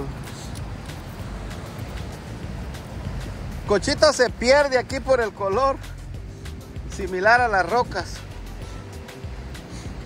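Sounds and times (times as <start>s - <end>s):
ocean surf: 0.0s - 10.0s
wind noise on microphone: 0.0s - 10.0s.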